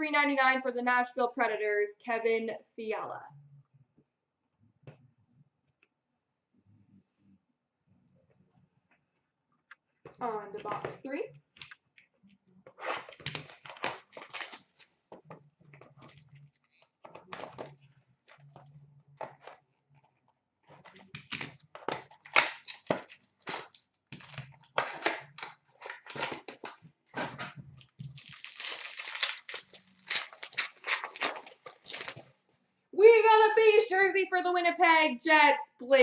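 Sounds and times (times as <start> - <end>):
plastic shrink-wrap tearing: 12.8 - 14.9, 22.2 - 26.8, 27.8 - 32.3.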